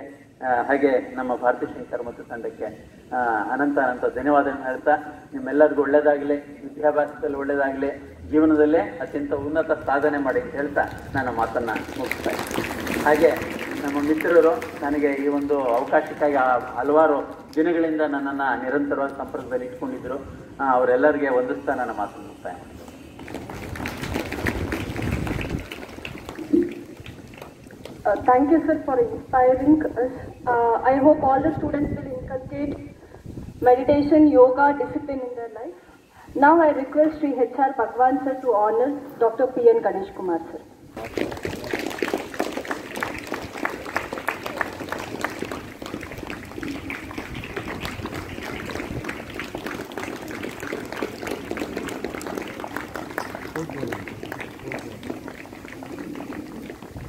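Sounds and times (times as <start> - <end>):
audience applause: 10.8 - 17.6, 23.1 - 28.0, 41.0 - 57.0.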